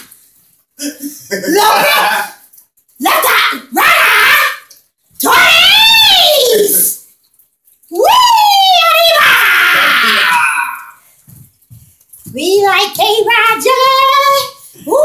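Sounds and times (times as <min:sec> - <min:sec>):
person shouting high-pitched: 0:01.5 - 0:02.4, 0:03.0 - 0:07.0, 0:07.9 - 0:11.0.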